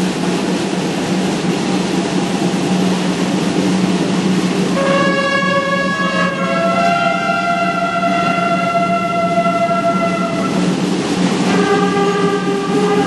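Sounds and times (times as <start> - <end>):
brass band holding chords: 4.8 - 10.7.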